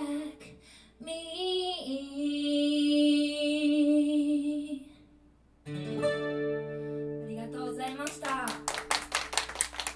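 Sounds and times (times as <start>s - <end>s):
acoustic guitar chord ringing: 5.6s - 7.8s
audience clapping: 7.8s - 9.9s.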